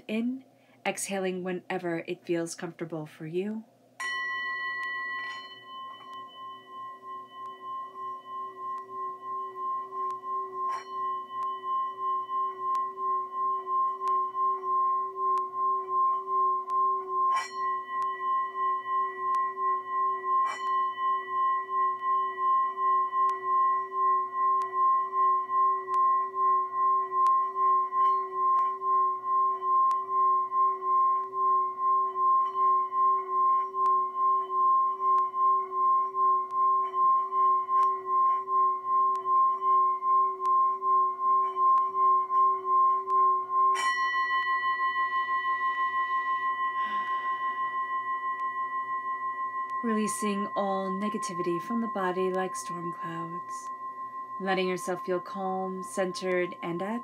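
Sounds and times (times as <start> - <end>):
singing bowl ringing: 4.0 - 57.0
mallet knocking bowl rim: 9.6 - 24.8.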